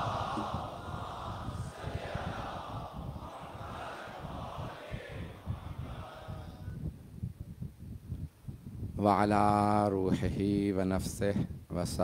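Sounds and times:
congregation reciting together: 0:00.0 - 0:06.8.

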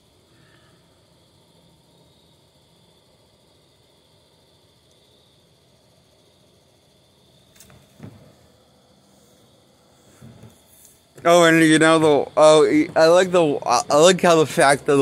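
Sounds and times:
faint hiss: 0:00.0 - 0:15.0
thin high whine: 0:07.4 - 0:15.0
short thump: 0:07.6 - 0:08.4.

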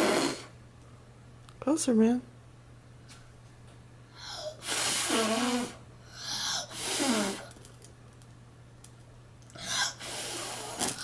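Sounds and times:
child blowing breathy puffs: 0:00.0 - 0:00.5, 0:04.2 - 0:07.5, 0:09.6 - 0:11.0.

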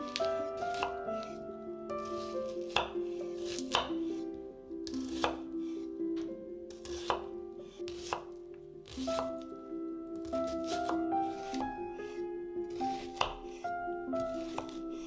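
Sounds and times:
knife cutting onion: 0:00.0 - 0:01.4, 0:02.0 - 0:05.9, 0:06.7 - 0:09.6, 0:10.2 - 0:15.0
background music: 0:00.0 - 0:15.0
knife tapping on cutting board: 0:13.2 - 0:13.5.

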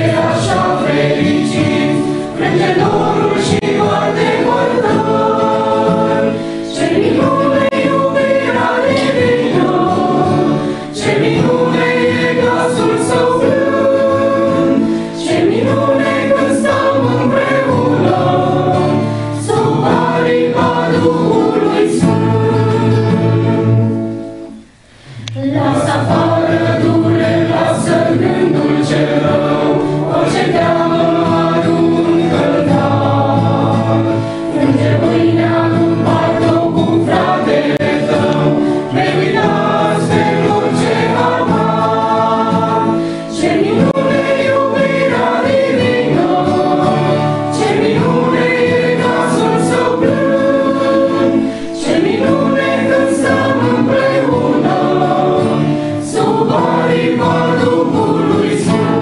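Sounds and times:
choir singing a hymn: 0:00.0 - 0:59.0.

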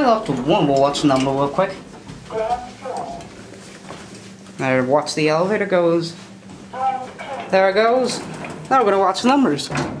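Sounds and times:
quiet speech: 0:02.3 - 0:03.3, 0:06.8 - 0:09.5.

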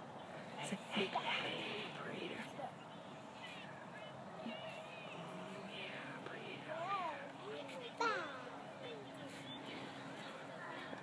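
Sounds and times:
faint voices murmuring: 0:00.0 - 0:11.0.

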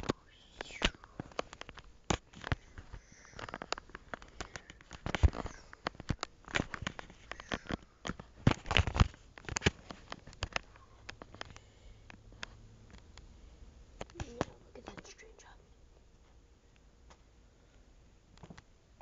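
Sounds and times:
camera handling noise: 0:00.8 - 0:11.5.

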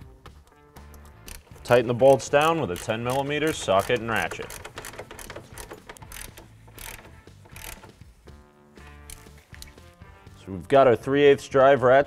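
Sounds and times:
faint background music: 0:00.0 - 0:12.0
ratchet clicking: 0:00.9 - 0:08.0, 0:09.1 - 0:09.7.

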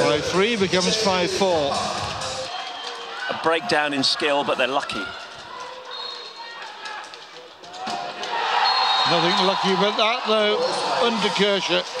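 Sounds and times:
crowd cheering: 0:02.5 - 0:07.2, 0:07.8 - 0:12.0.

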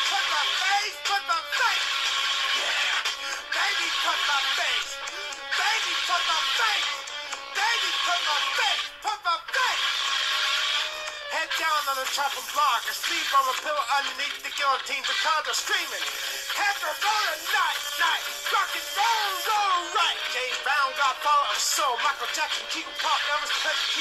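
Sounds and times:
man singing punk rock song: 0:00.0 - 0:01.9, 0:02.6 - 0:04.9, 0:05.6 - 0:07.0, 0:11.3 - 0:24.0.

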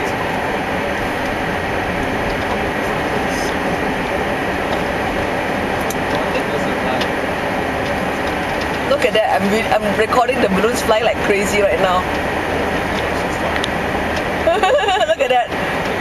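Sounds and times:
road noise: 0:00.0 - 0:16.0
wind rush in moving car: 0:00.0 - 0:16.0.

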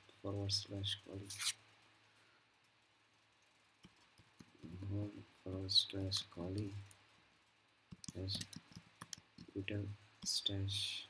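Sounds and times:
computer keyboard keys clicking: 0:03.8 - 0:04.8, 0:07.9 - 0:09.5.

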